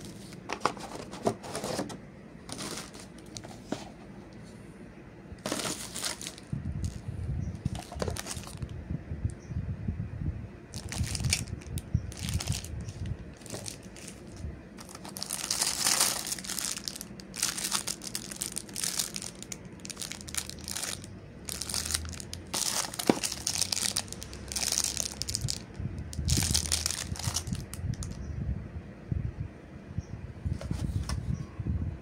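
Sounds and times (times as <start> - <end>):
plastic bags crinkling: 2.5 - 3.7, 5.4 - 7.0, 7.6 - 8.7, 10.7 - 28.2.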